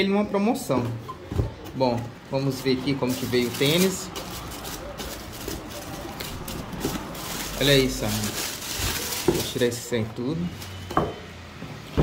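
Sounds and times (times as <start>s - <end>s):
tissue paper rustling and crinkling: 2.4s - 10.9s.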